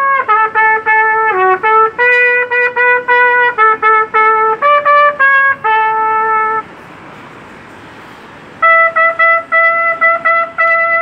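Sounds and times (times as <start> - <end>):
trumpet note tongued: 0.0 - 6.7, 8.6 - 11.0
background hiss: 0.0 - 11.0.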